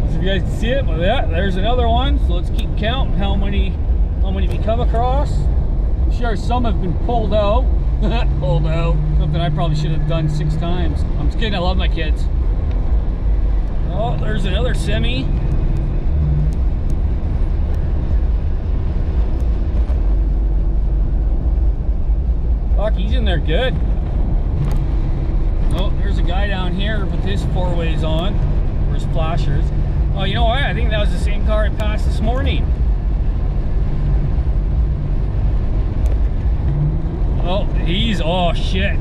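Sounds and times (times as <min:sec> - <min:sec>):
car engine rumble: 0:00.0 - 0:39.0
tyres on snowy road: 0:00.0 - 0:39.0.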